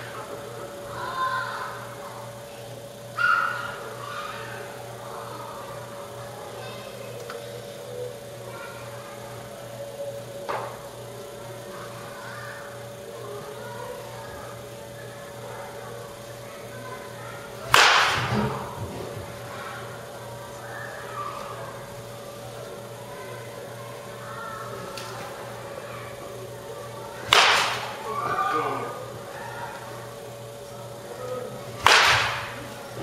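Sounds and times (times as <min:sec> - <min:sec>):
steady hum: 0:00.0 - 0:33.0
baseball bat hitting ball: 0:17.7 - 0:18.7, 0:27.3 - 0:28.0, 0:31.8 - 0:32.6.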